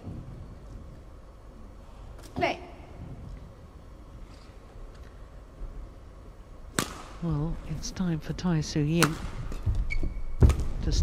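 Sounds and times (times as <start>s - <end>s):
low arena background: 0.0s - 11.0s
racket striking shuttlecock: 6.7s - 7.2s, 9.0s - 9.6s.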